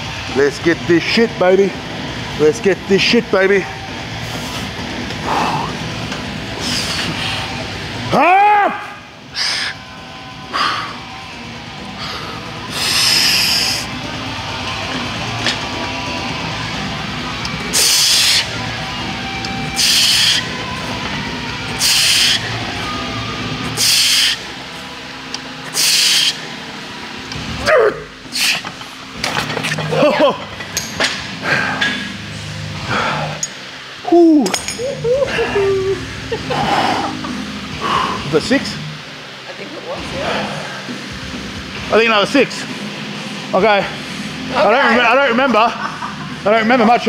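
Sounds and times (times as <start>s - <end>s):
loud hissing breaths: 6.6s - 7.6s, 9.3s - 9.8s, 10.5s - 11.1s, 12.0s - 13.9s, 17.7s - 18.5s, 19.8s - 20.5s, 21.8s - 22.6s, 23.8s - 24.4s, 25.7s - 26.4s, 28.3s - 28.6s, 32.8s - 33.5s, 37.8s - 38.3s.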